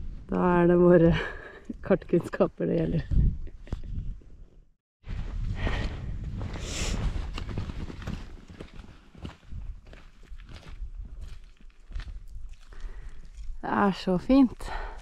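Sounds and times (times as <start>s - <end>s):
footsteps on rocky path: 5.6s - 15.0s.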